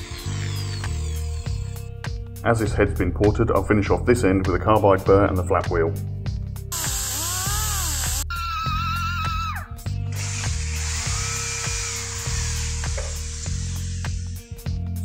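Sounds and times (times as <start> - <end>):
drill running with hiss: 0.0 - 1.8, 6.7 - 8.3, 10.1 - 14.5
rotary grinder whine: 0.0 - 1.8, 6.7 - 8.3, 10.1 - 14.4
background music: 0.0 - 15.0.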